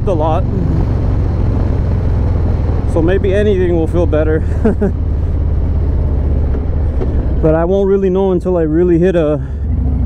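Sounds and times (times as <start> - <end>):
motorcycle engine rumbling: 0.0 - 10.0
wind and road noise: 0.0 - 10.0.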